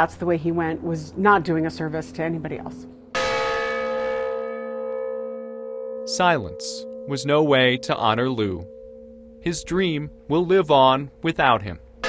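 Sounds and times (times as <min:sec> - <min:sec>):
large bell ringing: 0:00.5 - 0:12.0.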